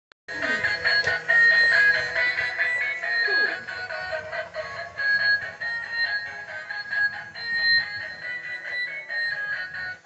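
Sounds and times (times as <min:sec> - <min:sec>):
toy train beeping tune: 0:00.3 - 0:10.0.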